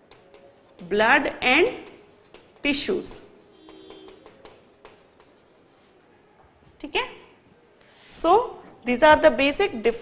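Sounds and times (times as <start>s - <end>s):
chalk tapping on board: 0.0s - 5.8s
chalk scratching on blackboard: 0.0s - 6.0s.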